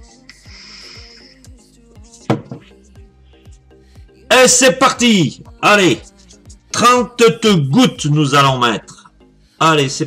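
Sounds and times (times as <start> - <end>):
music with steady beat: 0.0 - 7.4.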